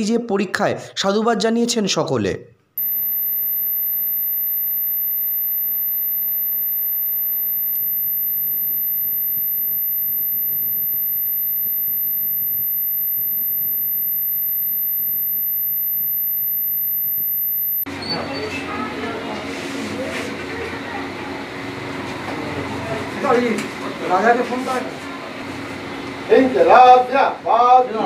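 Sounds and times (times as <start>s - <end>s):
high-pitched electronic tone: 2.8s - 17.9s.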